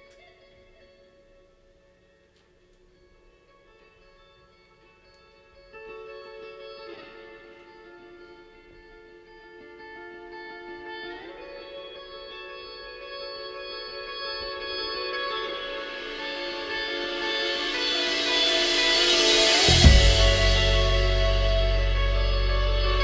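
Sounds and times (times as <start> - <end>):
electric guitar ringing chords: 0.0 - 23.0.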